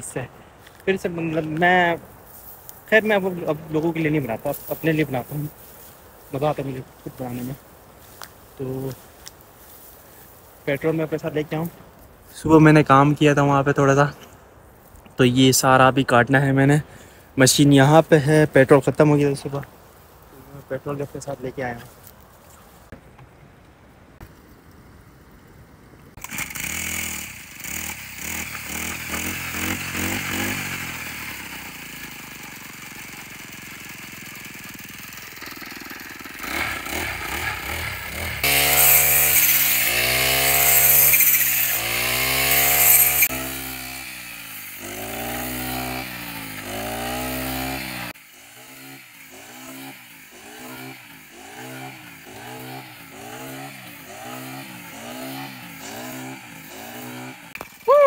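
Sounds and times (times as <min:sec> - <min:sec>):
brush cutter engine revving: 0:26.2 - 0:58.0.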